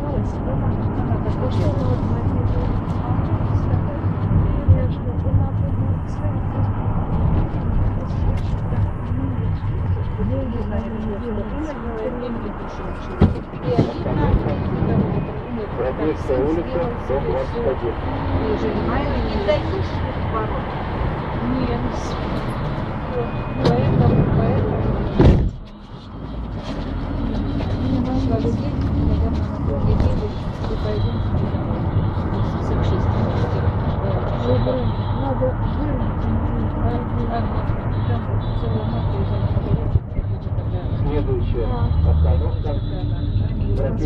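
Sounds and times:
bus engine and road rumble: 0:00.0 - 0:44.0
passengers talking: 0:00.0 - 0:44.0
sharp loud knock: 0:25.2 - 0:25.6.

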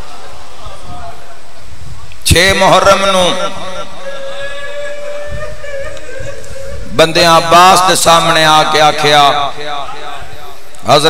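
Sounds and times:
steady tone over loudspeaker: 0:00.0 - 0:11.0
echoing voice: 0:02.2 - 0:11.0
chanted recitation: 0:02.4 - 0:11.0.

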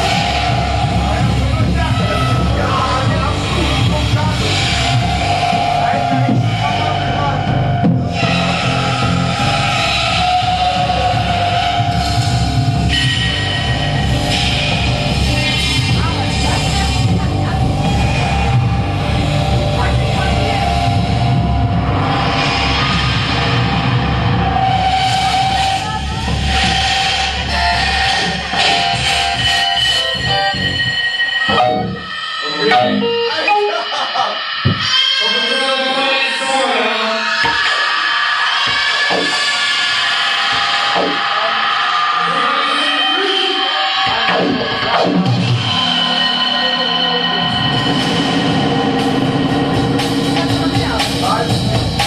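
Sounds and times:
distorted noise music: 0:00.0 - 0:52.0
wavering voice-like tones: 0:24.6 - 0:48.7.

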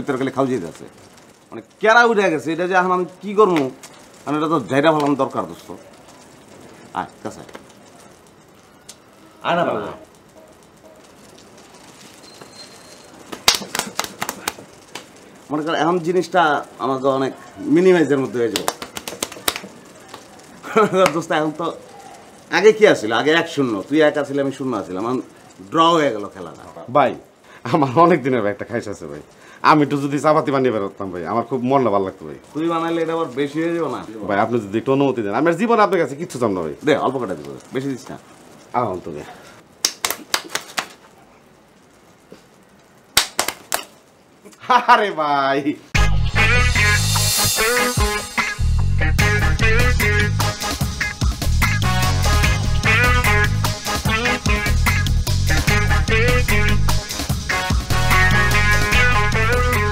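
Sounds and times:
sharp slaps to face: 0:13.3 - 0:15.1, 0:39.8 - 0:41.0, 0:43.2 - 0:43.9.

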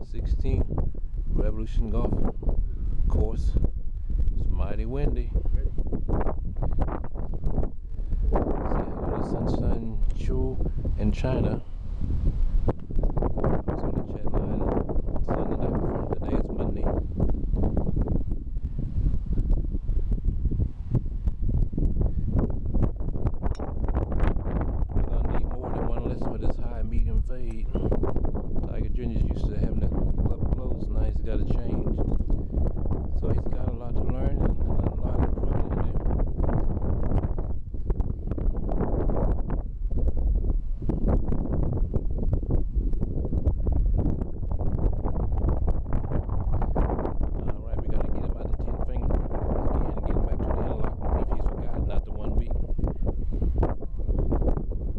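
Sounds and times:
wind buffeting microphone: 0:00.0 - 0:54.9.

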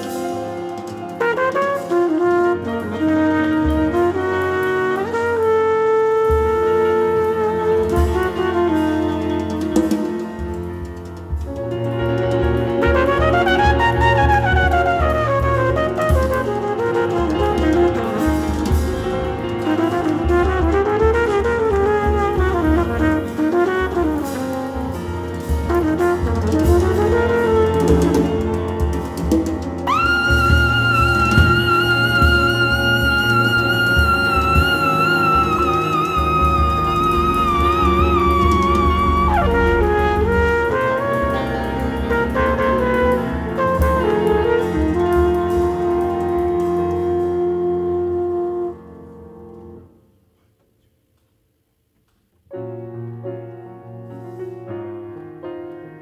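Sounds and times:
drum kit with cymbals: 0:00.0 - 0:48.8
double bass notes: 0:00.0 - 0:49.8
brass horn melody: 0:00.0 - 0:50.0
jazz band playing: 0:00.0 - 0:50.0, 0:52.6 - 0:56.0
trumpet: 0:00.0 - 0:50.1
piano: 0:00.0 - 0:56.0.

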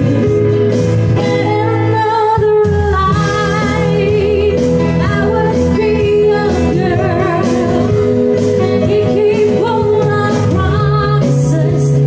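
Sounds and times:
person singing into a microphone: 0:00.0 - 0:12.0.

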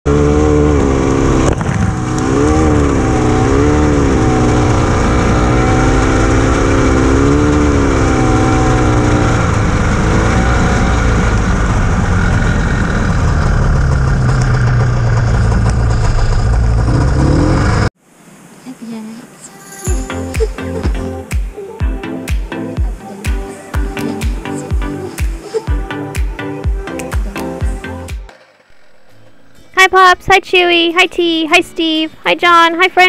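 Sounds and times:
snowmobile engine revving: 0:00.1 - 0:17.9.

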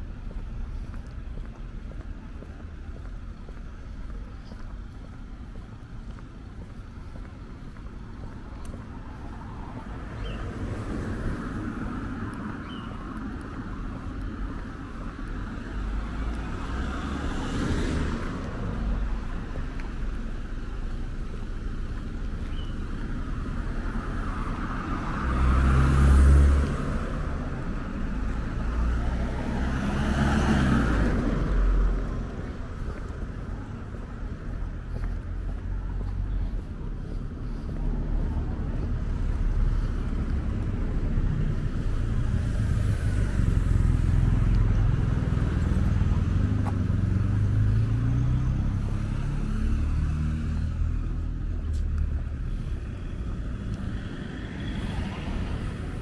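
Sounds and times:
cars passing: 0:00.0 - 0:56.0.

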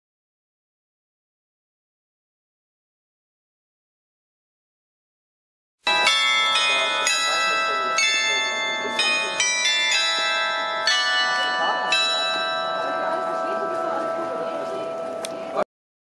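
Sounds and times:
glockenspiel melody: 0:05.9 - 0:15.6.

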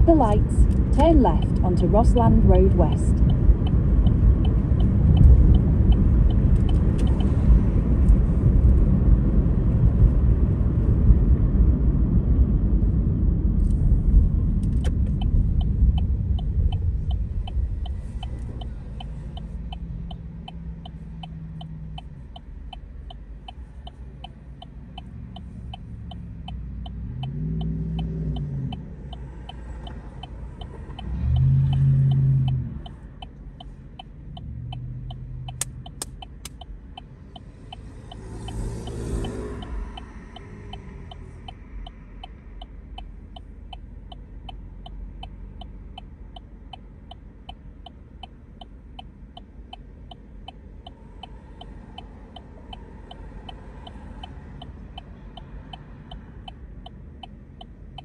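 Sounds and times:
low engine hum: 0:00.0 - 0:58.0
turn signal ticking: 0:00.0 - 0:58.0.

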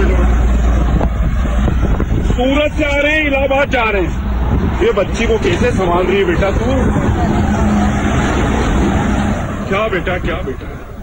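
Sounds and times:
highway traffic rushing: 0:00.0 - 0:11.0.

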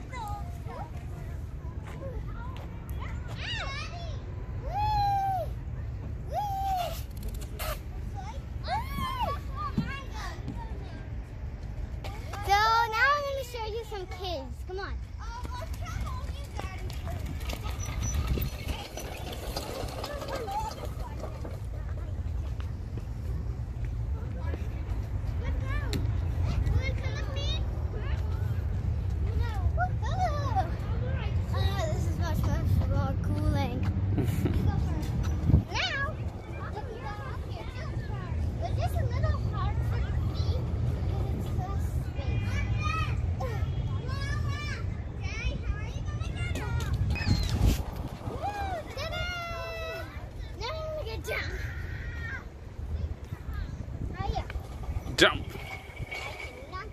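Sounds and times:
children's voices and calls: 0:00.0 - 0:56.9.

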